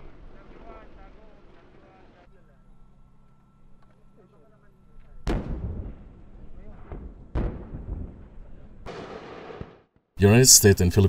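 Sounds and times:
rocket launch blast rumbling: 5.3 - 9.8.

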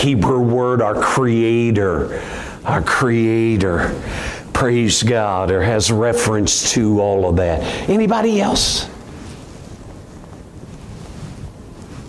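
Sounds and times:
low steady room rumble: 0.0 - 12.0
faint hiss: 1.0 - 12.0.

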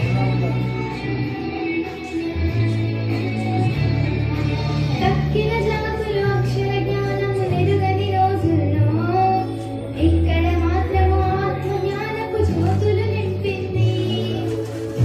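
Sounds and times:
backing music with bass line: 0.0 - 15.0.

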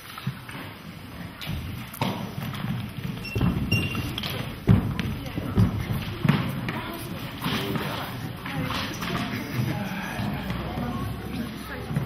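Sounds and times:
low thumps and knocks: 1.4 - 7.8.

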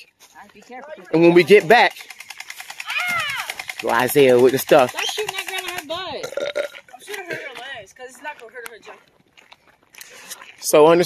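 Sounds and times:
fast even clicking rattle: 1.2 - 6.2
child's high-pitched call: 2.8 - 3.5.

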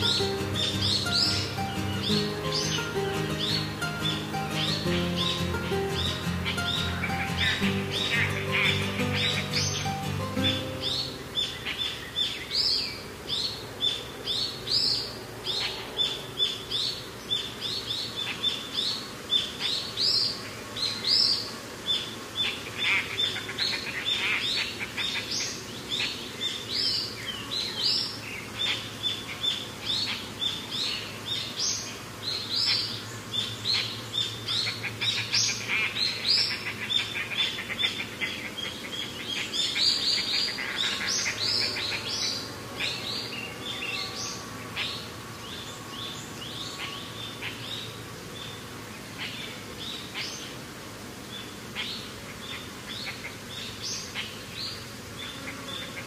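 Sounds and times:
small birds chirping: 0.0 - 56.0.

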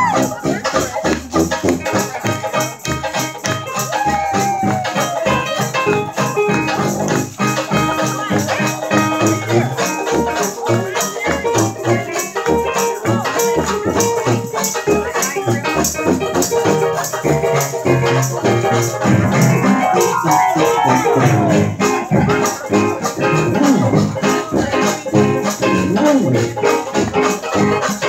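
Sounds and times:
jazz band playing: 0.0 - 28.0
sliding note: 19.0 - 22.3.

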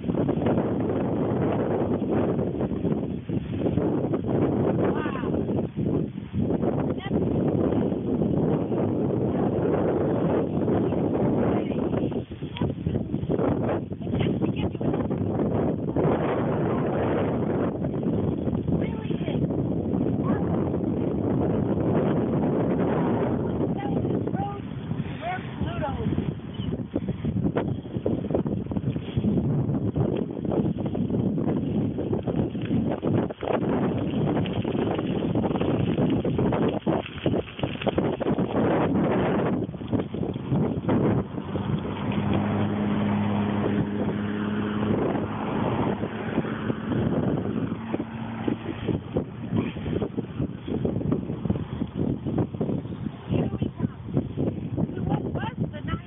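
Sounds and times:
road noise: 0.0 - 56.0
wind buffeting microphone: 0.0 - 56.0.

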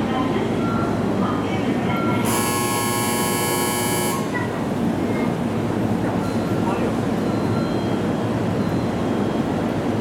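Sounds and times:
station platform noise: 0.0 - 10.0.

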